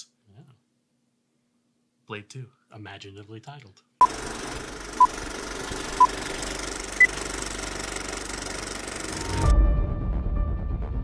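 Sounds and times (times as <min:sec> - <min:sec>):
film projector clattering: 0:04.0 - 0:09.4.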